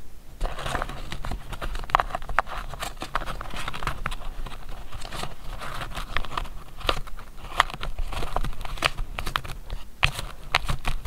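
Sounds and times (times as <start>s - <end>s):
paper cards flicking and rustling: 0.4s - 11.0s.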